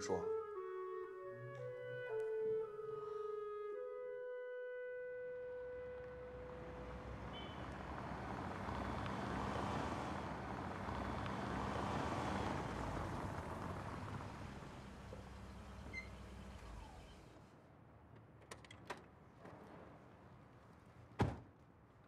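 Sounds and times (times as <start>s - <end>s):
car engine and tyre noise: 5.4s - 22.0s.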